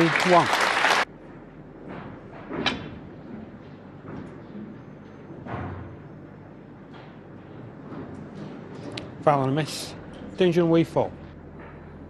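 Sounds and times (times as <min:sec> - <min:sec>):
audience applauding: 0:00.0 - 0:01.1.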